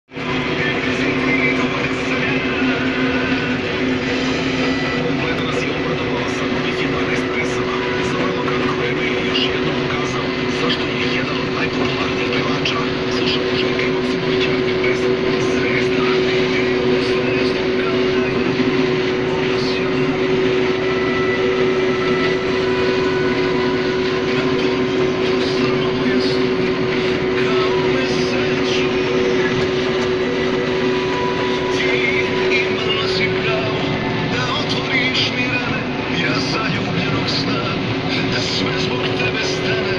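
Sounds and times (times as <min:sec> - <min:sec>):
combine engine and machinery drone: 0:00.1 - 0:39.9
constant mechanical whine: 0:00.1 - 0:39.9.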